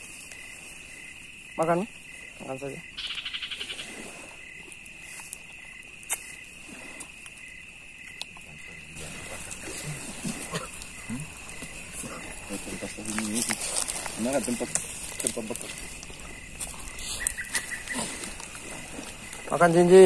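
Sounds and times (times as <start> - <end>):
insects droning: 0.0 - 20.0
pulsing insect trill: 0.0 - 20.0
quiet voices murmuring: 8.4 - 20.0.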